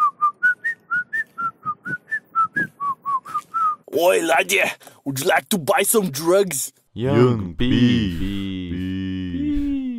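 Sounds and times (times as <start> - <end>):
whistled staccato tune: 0.0 - 3.8.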